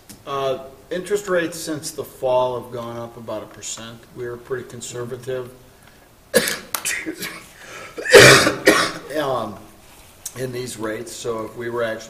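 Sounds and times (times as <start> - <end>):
man coughing: 6.3 - 9.1.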